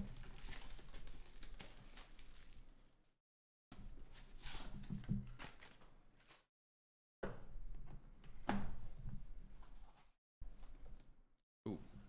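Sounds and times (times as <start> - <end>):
plastic shrink wrap crinkling: 0.1 - 3.0.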